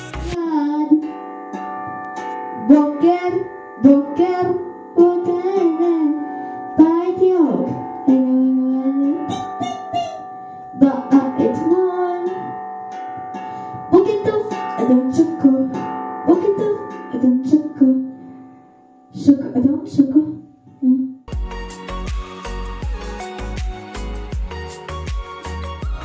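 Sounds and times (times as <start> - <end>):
long ringing instrument notes: 0.3 - 19.2
girl singing into a microphone: 2.6 - 6.2, 6.8 - 10.2, 10.8 - 12.5.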